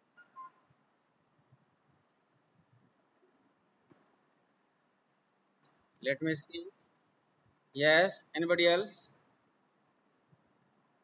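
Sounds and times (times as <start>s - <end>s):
faint high-pitched chirp: 0.0s - 0.8s.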